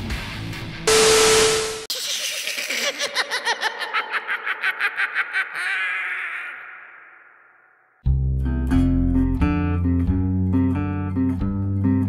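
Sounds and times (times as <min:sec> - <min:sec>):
evil cackling laugh: 0:01.9 - 0:07.9.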